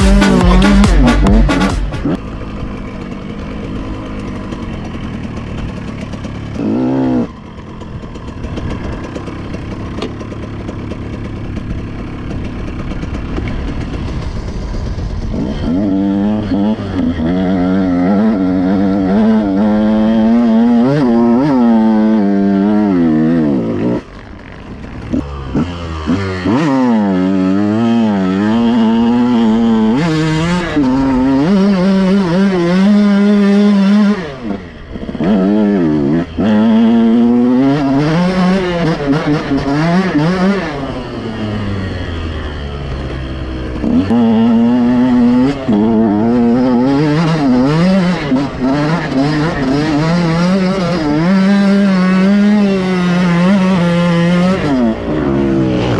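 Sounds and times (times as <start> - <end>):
dirt bike engine revving: 0.0 - 55.9.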